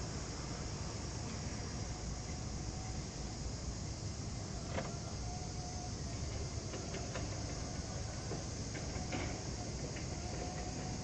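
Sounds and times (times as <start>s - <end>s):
faint whine: 0.0s - 11.0s.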